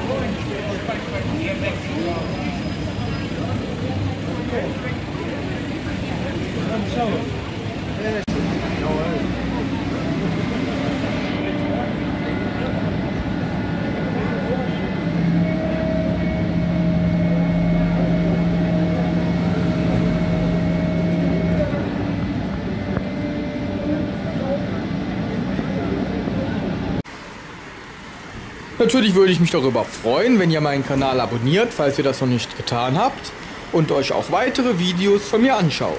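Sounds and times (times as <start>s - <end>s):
people talking: 0.0s - 27.0s, 28.2s - 35.9s
truck engine hum: 0.0s - 28.8s.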